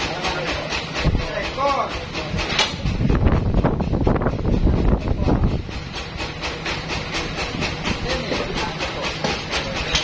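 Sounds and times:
band saw clatter and hum: 0:00.0 - 0:10.0.

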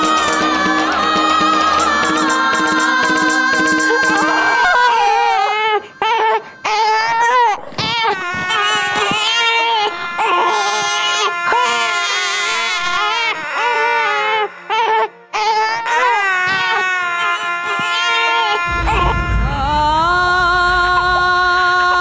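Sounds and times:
newborn baby crying: 0:04.6 - 0:18.7
steady held tone: 0:18.7 - 0:22.0.

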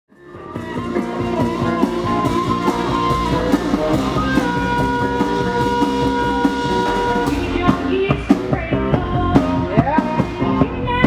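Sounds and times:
live band playing: 0:00.1 - 0:11.0.

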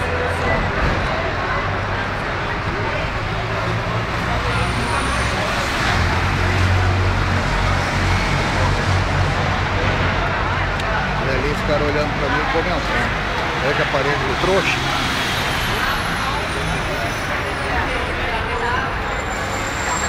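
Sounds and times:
people talking: 0:00.0 - 0:20.0
rumble of passing cars and buses: 0:00.0 - 0:20.0.

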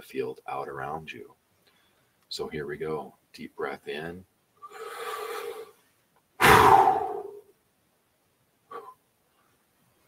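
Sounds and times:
man breathing in deeply: 0:04.6 - 0:05.8
man exhaling forcefully: 0:04.7 - 0:05.7, 0:06.4 - 0:07.4.

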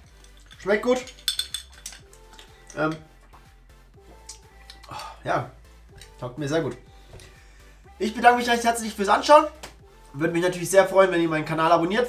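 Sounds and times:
ice cubes clinking in glass: 0:00.0 - 0:02.8
quiet background music: 0:00.0 - 0:12.0.

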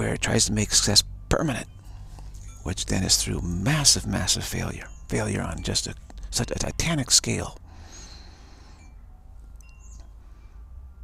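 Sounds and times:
faint chimes ringing: 0:00.0 - 0:11.0
low steady hum: 0:00.0 - 0:11.0.

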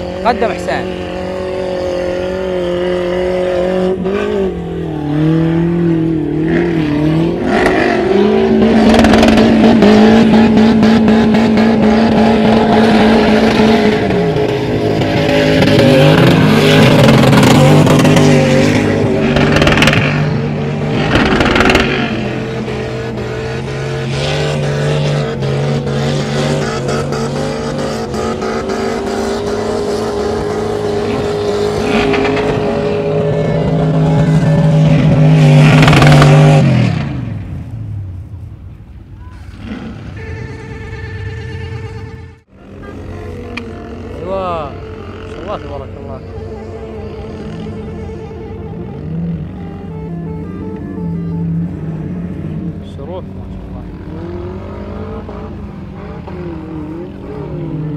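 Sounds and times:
off-road engines revving: 0:00.0 - 0:57.9.

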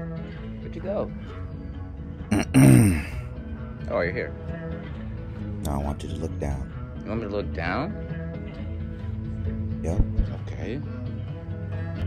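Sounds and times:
man clearing his throat: 0:02.3 - 0:03.2.

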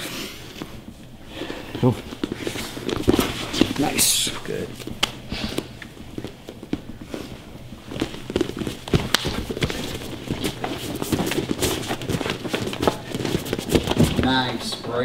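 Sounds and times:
feet scuffing on gym mats: 0:00.4 - 0:14.9.

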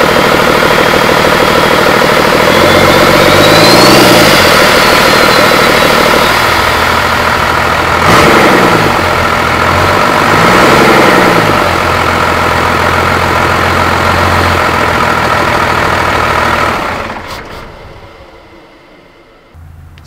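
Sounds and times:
diesel engine idling and revving: 0:00.0 - 0:20.0.

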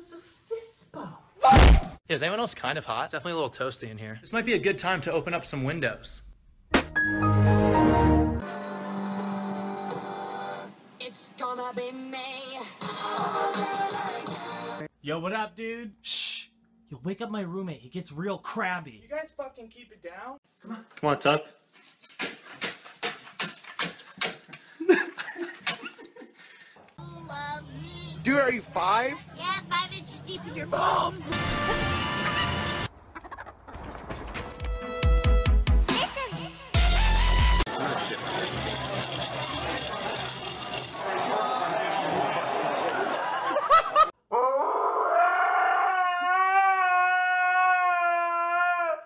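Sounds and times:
person laughing: 0:24.8 - 0:26.4, 0:43.3 - 0:44.1
restaurant chatter: 0:37.7 - 0:43.5
man yelping: 0:44.3 - 0:49.0.

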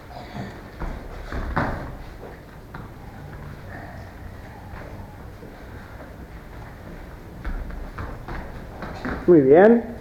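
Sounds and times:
bare feet thudding on foam mats: 0:00.6 - 0:03.8, 0:04.6 - 0:09.8.

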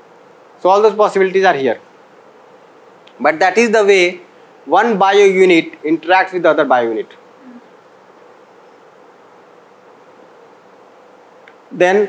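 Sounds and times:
room hum and hiss: 0:00.0 - 0:12.0.

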